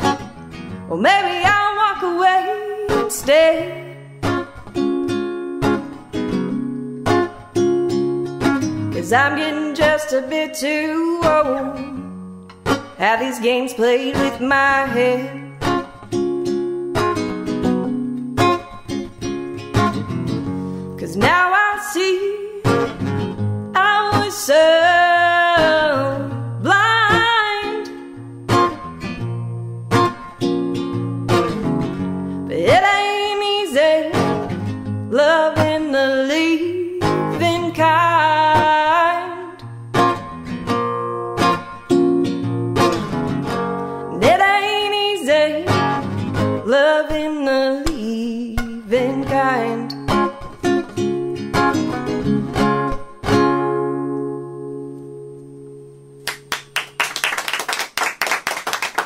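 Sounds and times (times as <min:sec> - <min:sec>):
acoustic guitar: 0:00.0 - 0:57.2
woman singing: 0:00.9 - 0:04.2, 0:08.8 - 0:12.1, 0:12.9 - 0:15.9, 0:21.0 - 0:22.9, 0:23.7 - 0:28.2, 0:32.5 - 0:39.7, 0:44.1 - 0:50.3.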